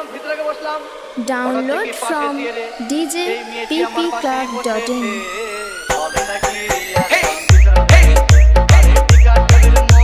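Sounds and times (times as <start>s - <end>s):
rising riser tone: 0.0s - 10.0s.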